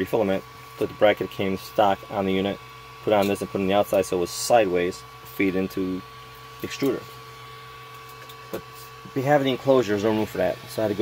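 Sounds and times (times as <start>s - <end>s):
printer fan hum with whine: 0.0s - 11.0s.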